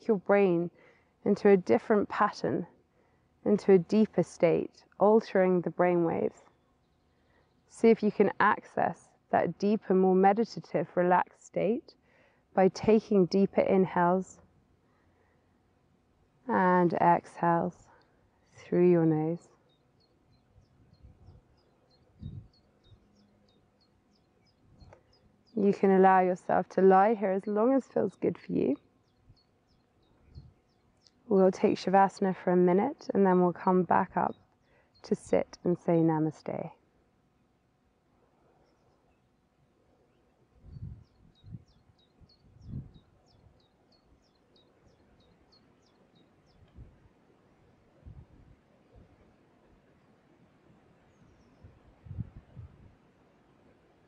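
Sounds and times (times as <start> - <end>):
small bird chirping: 19.4 - 25.6, 28.8 - 31.3, 40.6 - 46.8
wind buffeting microphone: 22.2 - 23.0, 30.2 - 30.6, 40.6 - 43.6, 46.6 - 47.0, 48.0 - 49.1, 51.6 - 53.0.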